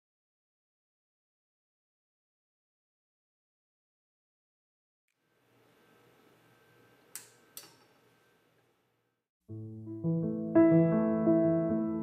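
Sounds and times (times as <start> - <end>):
sharp clicks: 7.1 - 7.9.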